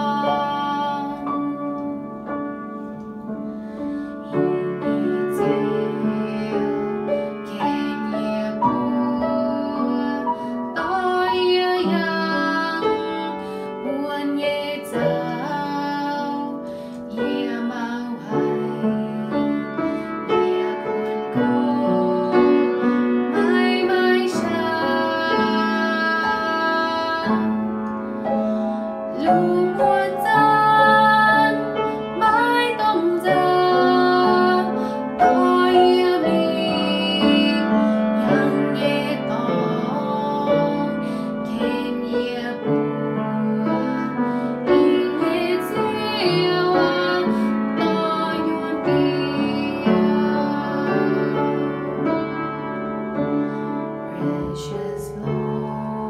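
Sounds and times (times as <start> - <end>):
girl singing a hymn: 0.0 - 2.0, 4.0 - 27.7, 29.1 - 52.6, 54.1 - 56.0.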